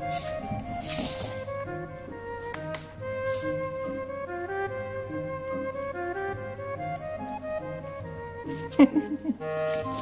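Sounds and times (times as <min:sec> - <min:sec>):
music of short stepping notes: 0:00.0 - 0:10.0.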